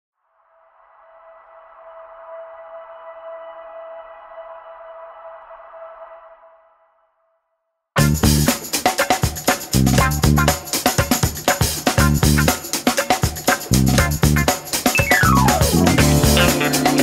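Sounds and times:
electronic synth logo tone: 15.0 - 17.0.

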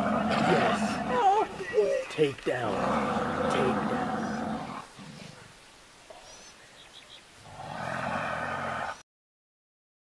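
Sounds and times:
lion growling: 0.0 - 5.5, 7.4 - 9.0.

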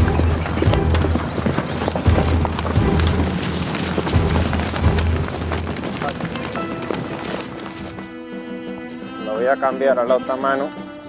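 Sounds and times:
horse galloping on dirt: 0.0 - 9.0
hoofbeats of running bulls: 0.0 - 9.1
background music with low notes: 0.0 - 11.0.

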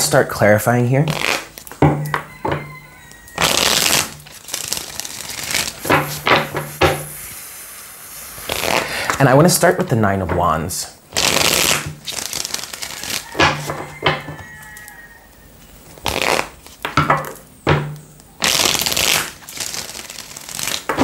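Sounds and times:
cards being shuffled: 1.1 - 7.4, 8.3 - 9.3, 11.1 - 15.0, 15.8 - 17.4, 18.4 - 21.0.

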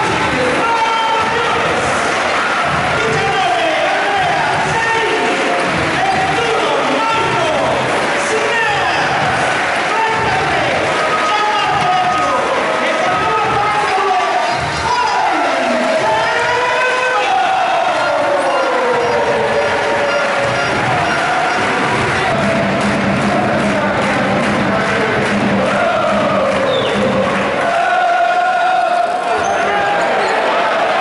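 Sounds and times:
music playing: 0.0 - 28.8
crowd cheering and singing: 0.0 - 31.0.

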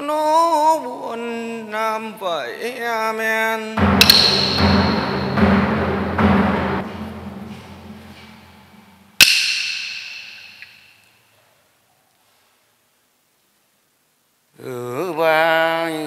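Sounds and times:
ringing percussion strike: 3.8 - 11.0.

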